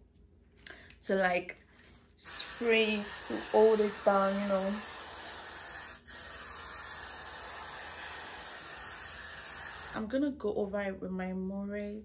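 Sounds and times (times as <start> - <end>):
aerosol hairspray hissing: 2.2 - 10.0.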